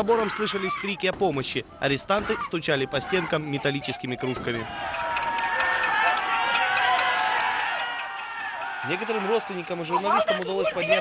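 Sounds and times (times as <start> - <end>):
distant crowd shouting and crying: 0.0 - 11.0.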